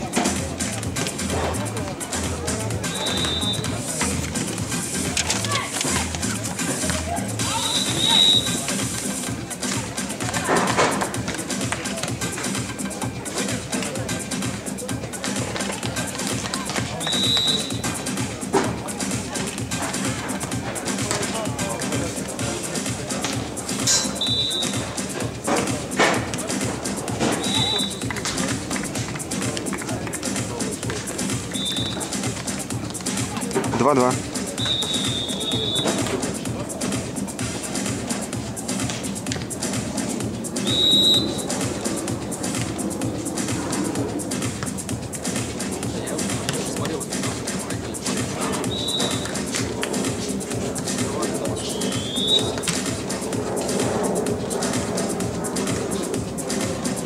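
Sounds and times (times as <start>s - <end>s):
background music: 0.0s - 57.0s
referee's whistle blasts: 2.8s - 3.8s, 7.4s - 8.7s, 17.0s - 17.9s, 24.0s - 24.9s, 27.3s - 28.1s, 31.5s - 32.2s, 34.6s - 36.1s, 40.6s - 41.5s, 48.6s - 49.3s, 51.6s - 52.6s.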